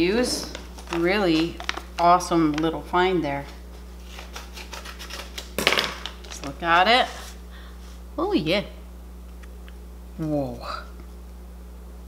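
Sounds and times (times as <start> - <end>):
scissors cutting paper packet: 4.0 - 6.5.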